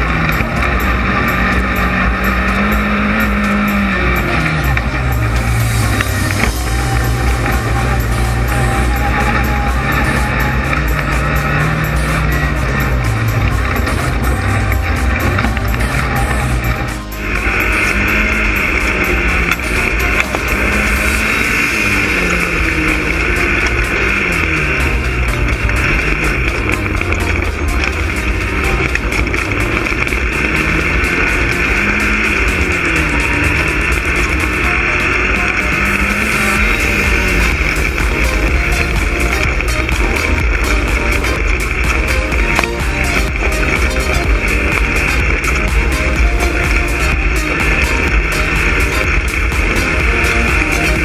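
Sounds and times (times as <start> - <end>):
buggy engine revving: 0.0 - 51.0.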